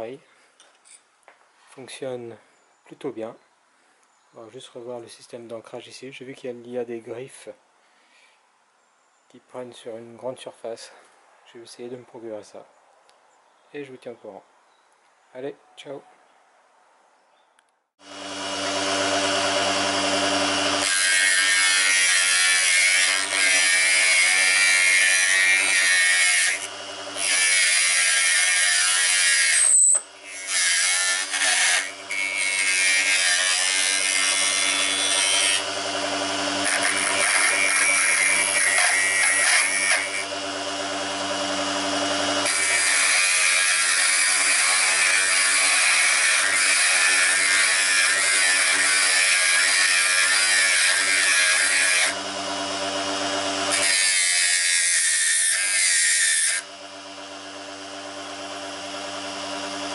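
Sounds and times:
lathe motor humming: 18.1 - 21.0, 24.0 - 27.7, 33.8 - 43.0, 51.0 - 54.1, 56.6 - 59.9
chisel scraping spinning wood: 18.2 - 59.9.

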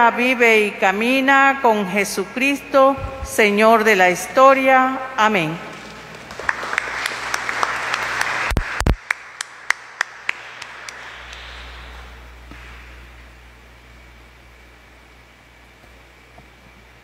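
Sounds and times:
congregation applauding: 6.0 - 12.2.

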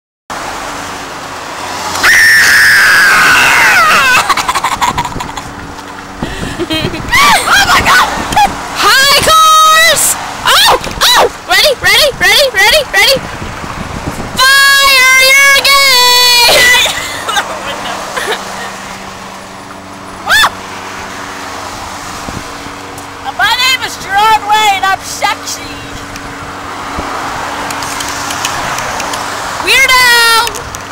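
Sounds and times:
road traffic noise: 0.3 - 30.9
girl squealing: 2.0 - 4.4, 6.9 - 8.1, 10.5 - 11.3, 20.2 - 20.6
woman screaming: 2.0 - 4.4, 7.0 - 8.2, 8.8 - 11.3, 14.4 - 18.4, 20.2 - 20.6
wavering high yelps: 2.0 - 5.3, 20.2 - 20.6.

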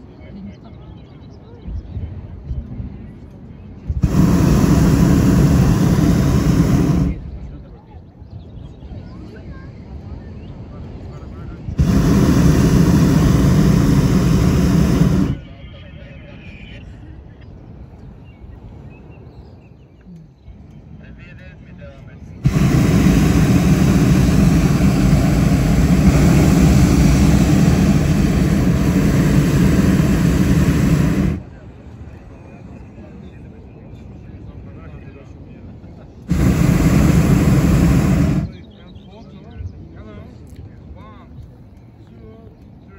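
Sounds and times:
propane burner blast: 3.9 - 7.4, 11.7 - 15.4, 22.4 - 31.5, 36.2 - 38.6.

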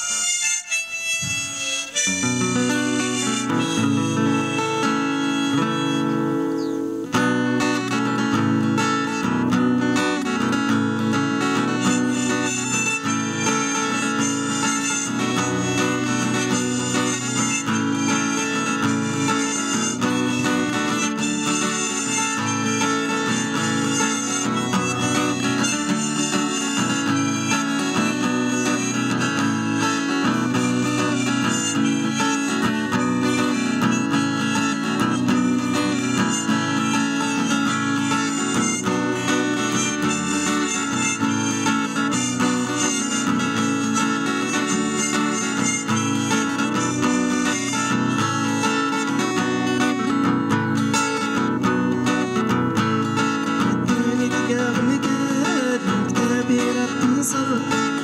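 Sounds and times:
acoustic guitar picked: 0.0 - 58.0
harmonica melody: 0.0 - 58.0.

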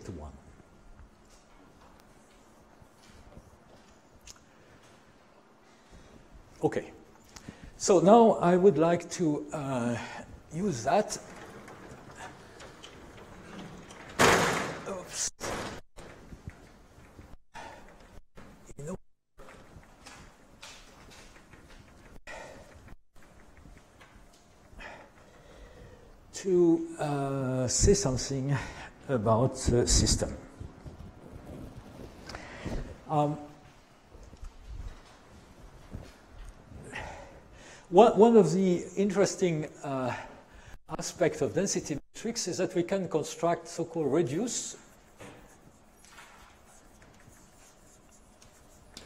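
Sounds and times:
sponge rubbing on blackboard: 44.8 - 49.0.

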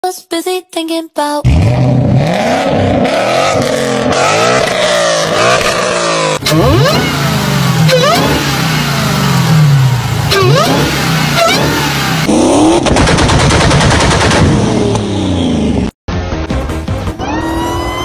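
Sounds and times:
car engine revving: 1.5 - 15.9
supercharger whine: 1.5 - 15.9.

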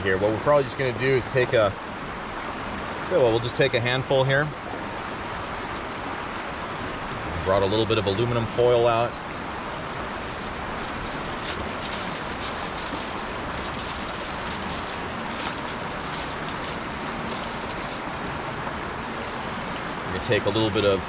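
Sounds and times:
steady rushing background noise: 0.0 - 21.0
foil crinkling and rustling: 9.3 - 18.2.

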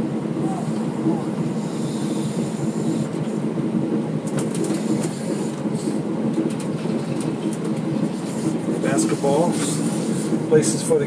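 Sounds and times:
diesel engine drone: 0.0 - 11.0
body clicks and rattles: 4.2 - 5.6, 6.3 - 8.2.

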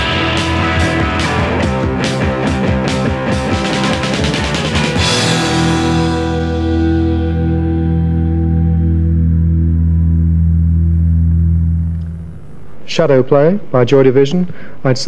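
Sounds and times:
low bass note: 5.8 - 13.0.

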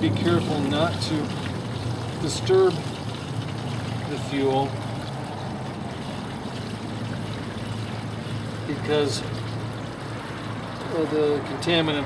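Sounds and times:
fuel trickling through funnel: 0.0 - 12.0.

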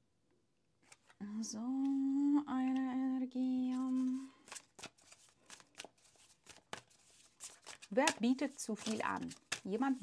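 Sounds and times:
cards being shuffled: 0.8 - 1.2, 3.7 - 10.0.

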